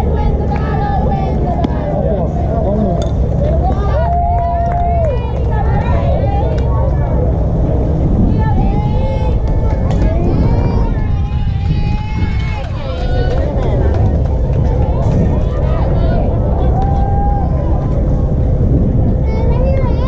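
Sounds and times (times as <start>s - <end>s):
voices calling out and cheering: 0.0s - 20.0s
wind rumble on microphone: 0.0s - 20.0s.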